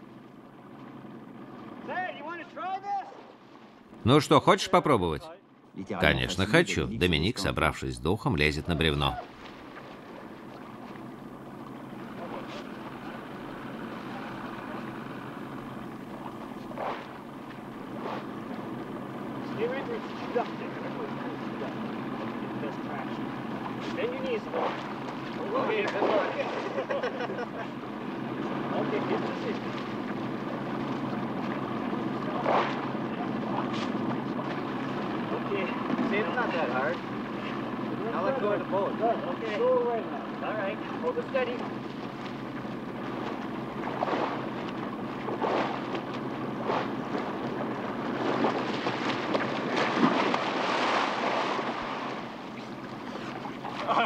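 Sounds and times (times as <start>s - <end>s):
river water: 0.0s - 54.0s
men calling out: 4.1s - 9.3s.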